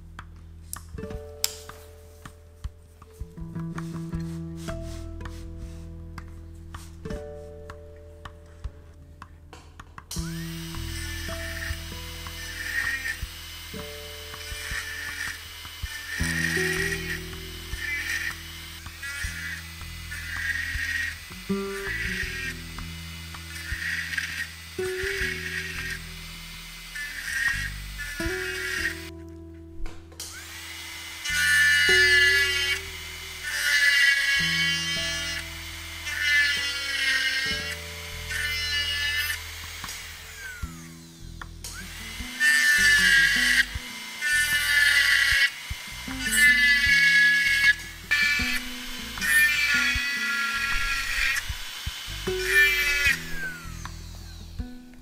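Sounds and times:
rotary handpiece whining: 0:10.0 - 0:29.2, 0:30.1 - 0:55.0.

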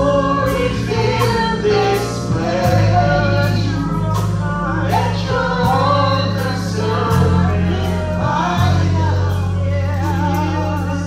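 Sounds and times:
regular percussion beat: 0:00.0 - 0:11.0
sustained low instrumental notes: 0:00.0 - 0:11.0
woman singing gospel into microphone: 0:00.0 - 0:11.0.

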